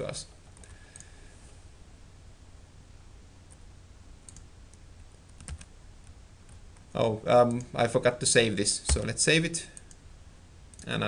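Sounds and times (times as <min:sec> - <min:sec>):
steady low hum: 0:00.0 - 0:11.0
computer keyboard and mouse clicks: 0:05.3 - 0:05.7.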